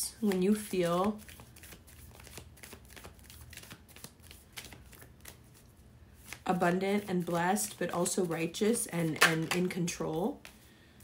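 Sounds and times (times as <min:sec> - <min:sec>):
cards shuffling: 0:00.2 - 0:10.7.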